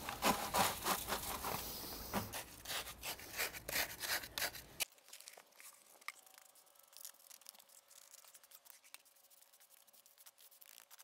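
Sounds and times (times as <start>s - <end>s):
concrete scraped from plastic bucket: 0.1s - 2.8s.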